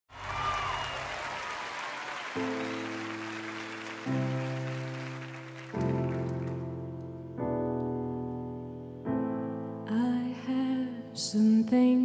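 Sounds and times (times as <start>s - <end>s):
audience applause: 0.1s - 6.9s
whistles: 0.2s - 5.4s
piano slow held chords: 2.4s - 12.0s.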